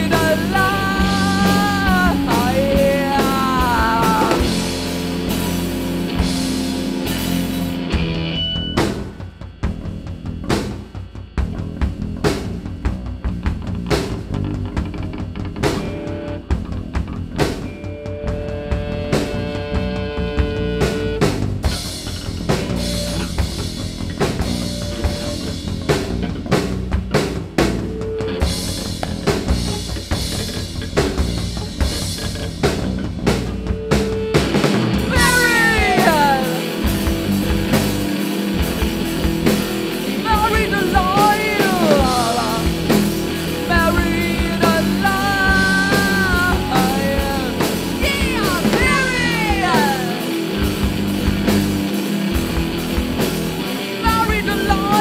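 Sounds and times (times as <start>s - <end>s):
person singing: 0.0s - 4.8s, 35.0s - 37.3s, 40.1s - 50.7s, 53.8s - 55.0s
bass guitar: 0.0s - 55.0s
drum kit playing: 0.0s - 55.0s
electric guitar: 0.0s - 55.0s.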